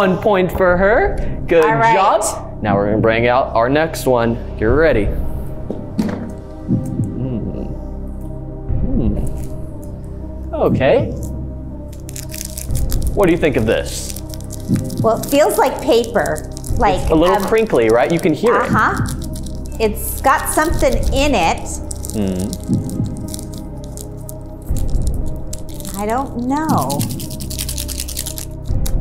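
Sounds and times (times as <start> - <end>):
soft background music: 0.0 - 29.0
paper packet crinkling: 11.9 - 29.0
sugar granules shifting: 11.9 - 29.0.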